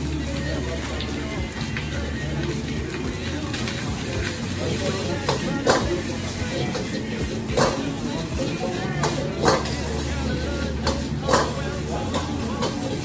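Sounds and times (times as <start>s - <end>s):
indistinct voices: 0.0s - 13.0s
music with low bass notes: 0.0s - 13.0s.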